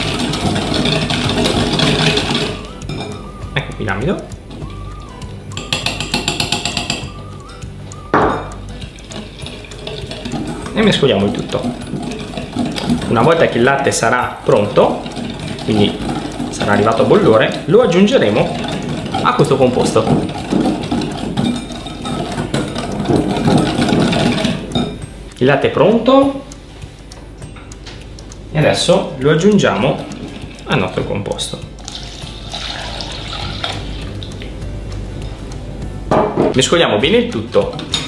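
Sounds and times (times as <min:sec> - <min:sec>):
whisk clicking against glass bowl: 0:00.0 - 0:07.3, 0:08.5 - 0:25.1
soft background music: 0:00.0 - 0:38.0.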